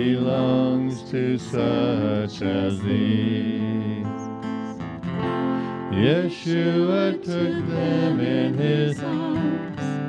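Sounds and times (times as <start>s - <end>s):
person singing slow worship song: 0.0s - 10.0s.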